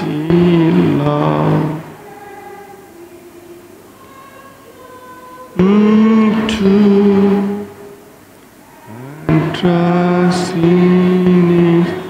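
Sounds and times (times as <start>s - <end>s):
slow hymn singing: 0.0s - 12.0s.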